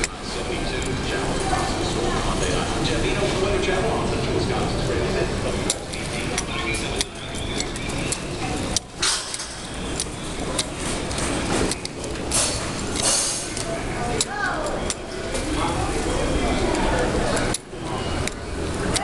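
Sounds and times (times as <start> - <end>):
indistinct voices: 0.0 - 19.0
steady low hum: 0.0 - 19.0
scattered clicks and clinks: 5.5 - 19.0.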